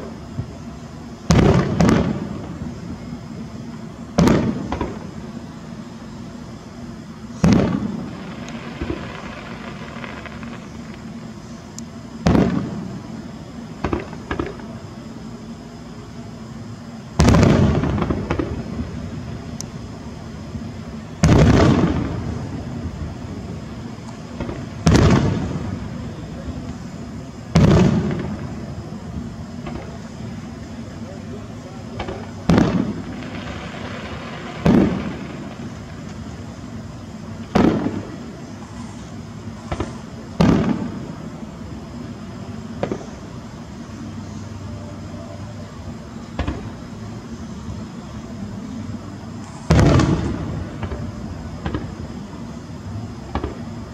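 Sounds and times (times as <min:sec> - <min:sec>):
fireworks booming: 0:00.0 - 0:15.2, 0:16.9 - 0:53.9
small fireworks pops and crackles: 0:00.0 - 0:53.9.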